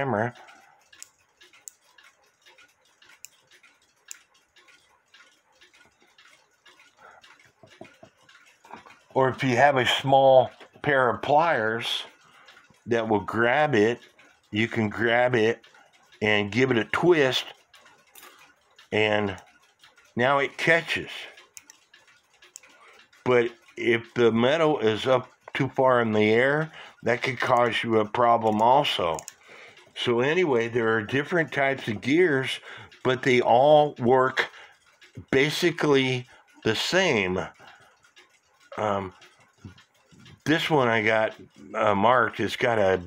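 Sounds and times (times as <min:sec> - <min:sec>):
ratchet wheel clicking: 0:00.0 - 0:43.0.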